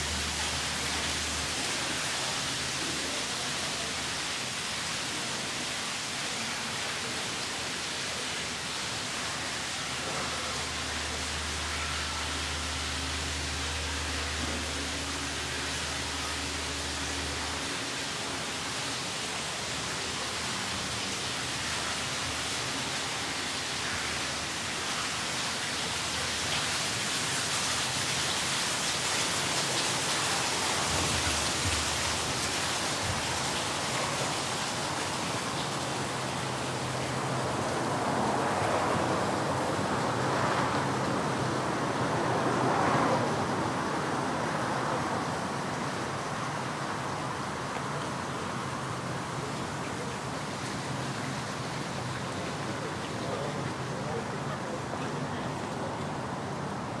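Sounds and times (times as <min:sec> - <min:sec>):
fountain water spilling into pool: 0:00.0 - 0:57.0.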